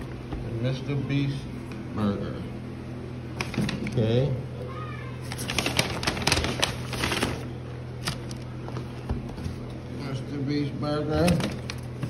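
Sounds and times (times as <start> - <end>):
cardboard boxes and paper rustling: 5.2 - 9.8.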